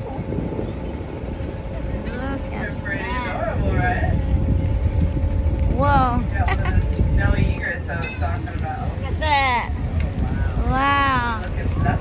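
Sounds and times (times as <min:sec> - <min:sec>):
boat engine rumbling: 0:00.0 - 0:12.0
faint constant hum: 0:00.0 - 0:12.0
wind on microphone: 0:00.0 - 0:12.0.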